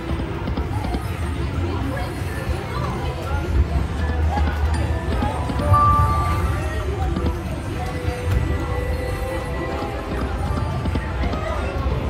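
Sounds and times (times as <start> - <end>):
casino background noise: 0.0 - 12.0
slot machine game music: 5.6 - 7.0.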